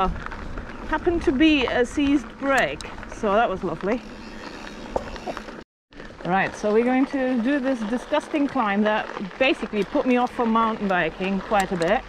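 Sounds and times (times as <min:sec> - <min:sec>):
bike tyres on gravel: 0:00.0 - 0:12.0
sharp clicks from bike: 0:09.6 - 0:12.0.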